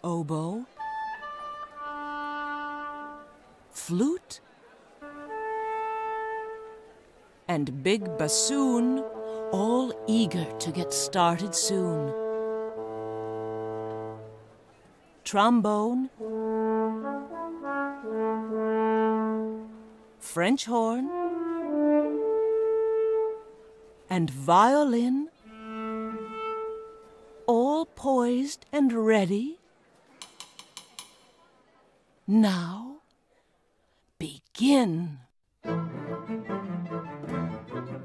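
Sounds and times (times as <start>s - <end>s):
wind instruments sustained chord: 5.0s - 7.0s, 7.6s - 14.7s, 15.8s - 24.1s, 25.4s - 27.5s
baton tapping on music stand: 30.2s - 31.3s.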